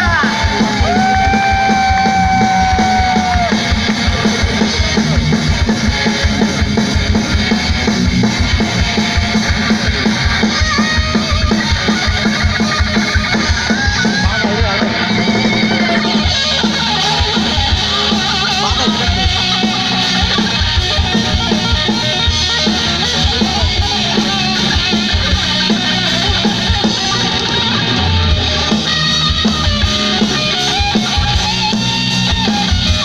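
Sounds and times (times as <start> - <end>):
fast drumming: 0.0 - 33.0
guitar: 0.0 - 33.0
live band through loudspeakers: 0.0 - 33.0.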